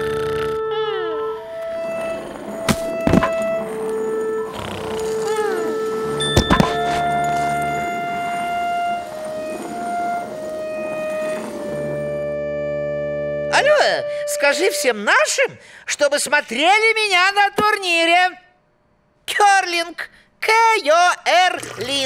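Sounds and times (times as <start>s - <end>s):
cartoon music with held notes: 0.0s - 14.9s
comic thumps: 1.8s - 3.9s, 4.8s - 7.3s.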